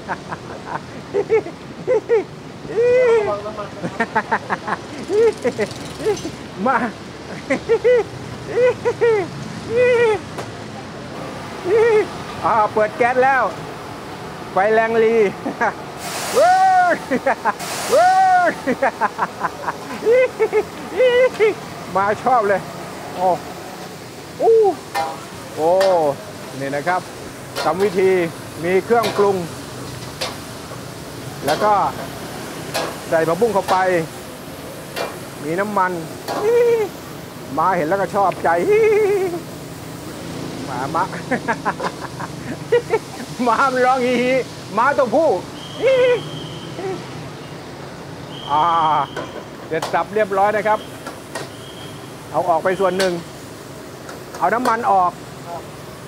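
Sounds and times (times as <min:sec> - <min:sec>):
gas burner hissing: 0:00.0 - 0:56.0
vegetables frying in wok: 0:00.0 - 0:56.0
person calling out: 0:02.0 - 0:03.8, 0:08.5 - 0:10.3, 0:11.6 - 0:12.6, 0:16.3 - 0:17.2, 0:17.9 - 0:18.7, 0:20.0 - 0:22.4, 0:24.4 - 0:24.9, 0:35.5 - 0:37.0, 0:38.4 - 0:39.5, 0:45.2 - 0:47.1
people shouting hoot-like calls: 0:16.3 - 0:17.1, 0:17.9 - 0:18.6, 0:45.6 - 0:47.1.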